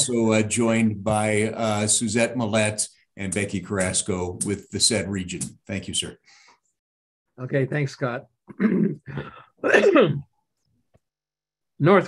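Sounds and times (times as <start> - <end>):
man clearing his throat: 8.5 - 10.3.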